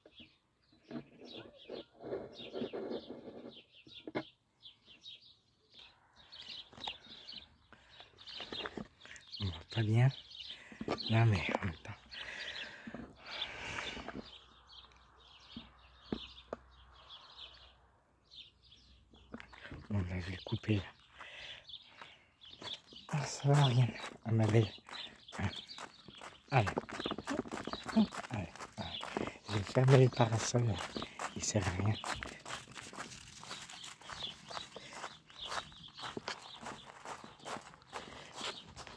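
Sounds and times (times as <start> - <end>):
small birds chirping: 0.0 - 38.9
footsteps on gravel: 8.2 - 9.2, 20.8 - 38.9.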